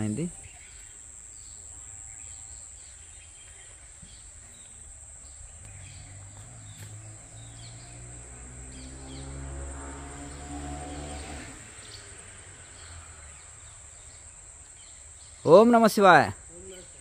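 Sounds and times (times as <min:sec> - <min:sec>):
bird chirps: 0:00.0 - 0:17.0
high insect drone: 0:00.0 - 0:17.0.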